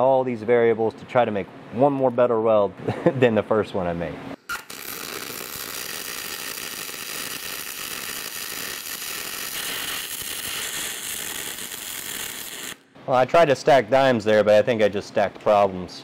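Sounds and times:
welding arc crackling hiss: 0:04.5 - 0:12.9.

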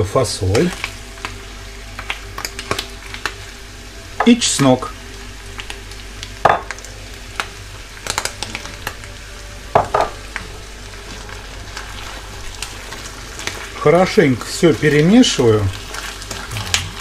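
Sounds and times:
food sizzling in a pan: 0:00.0 - 0:17.0.

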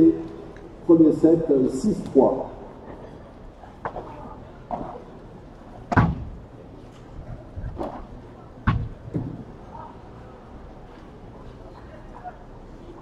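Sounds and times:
ball struck by rackets: 0:05.9 - 0:06.3.

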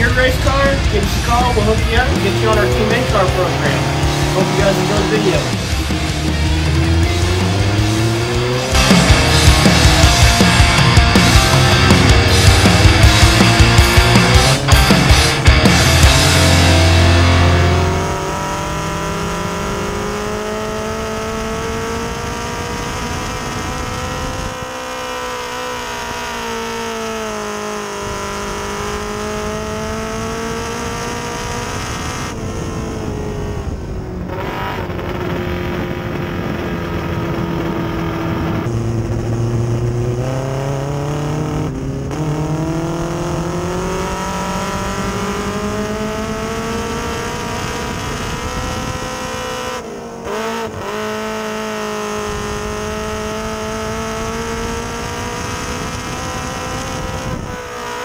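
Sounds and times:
race car engine running hard: 0:00.0 - 0:58.0.

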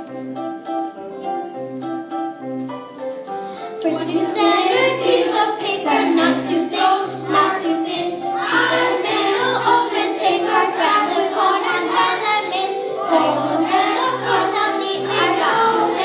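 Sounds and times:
musical accompaniment: 0:00.0 - 0:16.0
children singing: 0:03.8 - 0:16.0.

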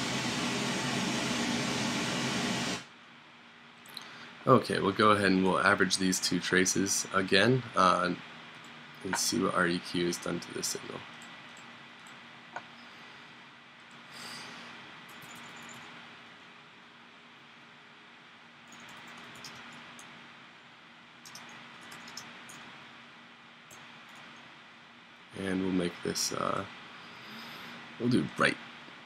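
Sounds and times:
faint hiss and hum: 0:00.0 - 0:29.0
keyboard typing: 0:15.1 - 0:15.8, 0:18.7 - 0:20.1, 0:21.2 - 0:22.7
computer mouse clicks: 0:18.7 - 0:20.1, 0:21.2 - 0:22.6.

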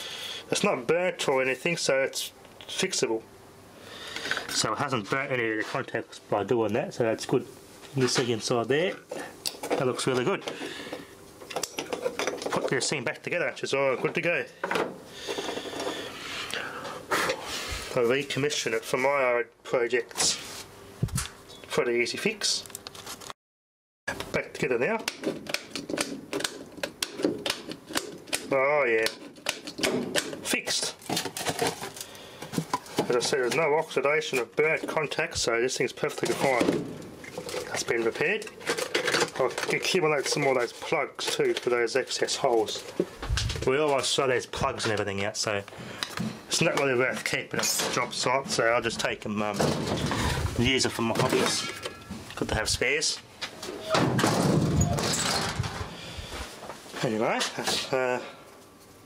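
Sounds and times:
rustling and scraping handling noise: 0:04.1 - 0:06.3, 0:07.1 - 0:19.2, 0:20.0 - 0:21.3, 0:22.6 - 0:23.4, 0:25.2 - 0:54.0, 0:54.7 - 0:59.0.

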